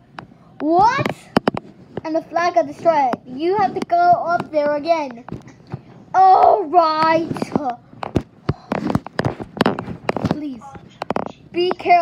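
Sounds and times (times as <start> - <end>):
phone handling knocks and rustling: 1.0 - 2.0, 7.3 - 11.3.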